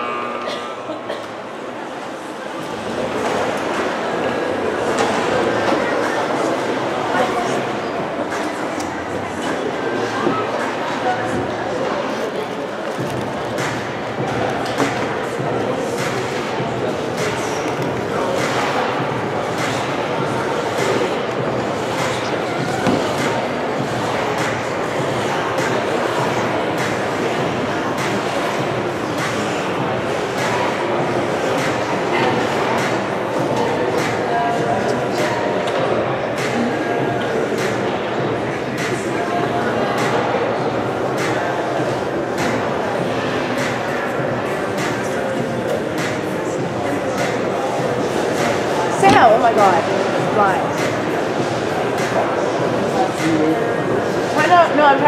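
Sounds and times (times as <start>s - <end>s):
indistinct crowd chatter: 0.0s - 55.0s.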